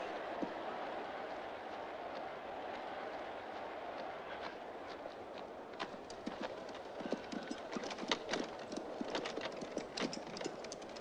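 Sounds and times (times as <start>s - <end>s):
steady background noise: 0.0s - 11.0s
horse hooves clip-clopping: 3.9s - 11.0s.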